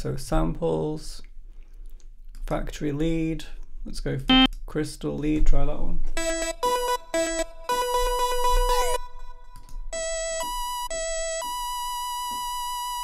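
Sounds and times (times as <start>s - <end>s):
synthesizer lead notes: 6.2s - 11.7s.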